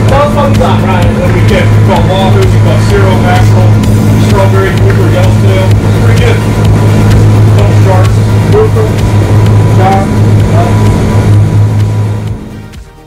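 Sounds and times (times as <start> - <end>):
rushing wind: 0.0 - 12.7
boat engine droning: 0.0 - 13.0.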